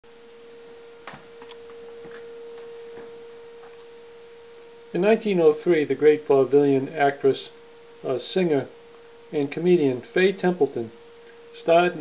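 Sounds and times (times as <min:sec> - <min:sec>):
steady pure tone: 0:00.0 - 0:12.0.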